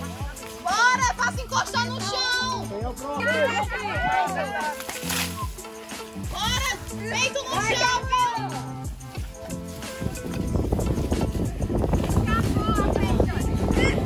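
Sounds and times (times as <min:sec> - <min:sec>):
high voices: 0:00.0 - 0:14.0
music with steady bass line: 0:00.0 - 0:14.0.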